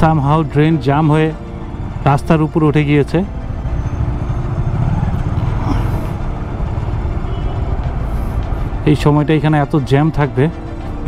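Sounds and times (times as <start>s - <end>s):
motorcycle and car engines in traffic: 0.0s - 9.8s.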